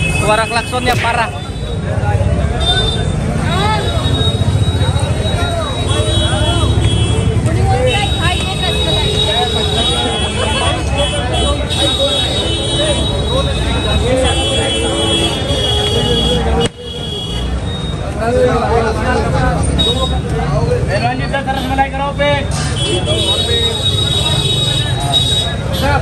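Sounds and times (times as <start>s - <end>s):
vehicle horns blaring: 0.0s - 1.9s, 2.5s - 17.8s, 21.4s - 26.0s
crowd chatter: 0.0s - 26.0s.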